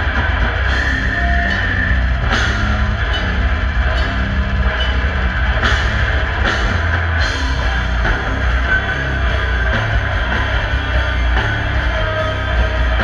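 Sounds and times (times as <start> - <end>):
death metal band playing: 0.0 - 13.0.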